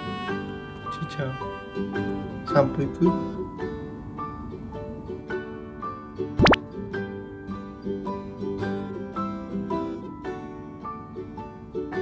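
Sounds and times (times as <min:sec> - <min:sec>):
plucked-string background music: 0:00.0 - 0:12.0
rising pop sound effect: 0:06.4 - 0:06.6.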